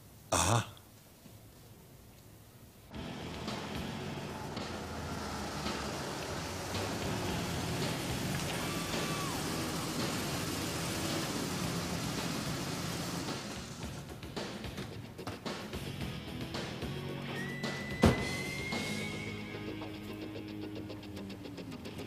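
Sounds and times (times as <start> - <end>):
car engine idling: 3.0 - 14.4.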